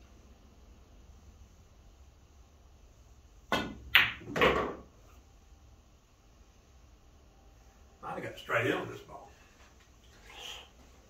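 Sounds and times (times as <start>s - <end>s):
pool balls clacking: 3.5s - 4.9s.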